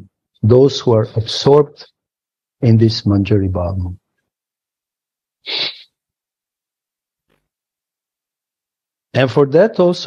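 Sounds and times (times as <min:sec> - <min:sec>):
person's sharp breath: 0:05.4 - 0:06.0.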